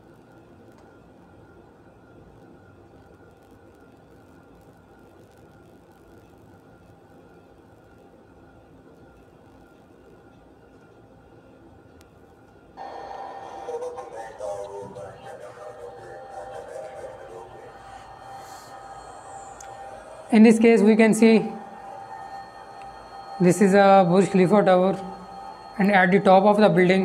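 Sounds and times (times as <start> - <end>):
faint steady tones: 0.0 - 27.0
low room hum: 0.0 - 27.0
video audio over loudspeakers: 12.8 - 27.0.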